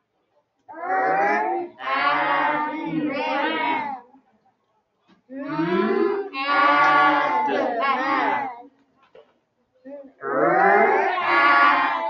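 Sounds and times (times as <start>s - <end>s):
person sounding out a word: 5.4s - 6.2s.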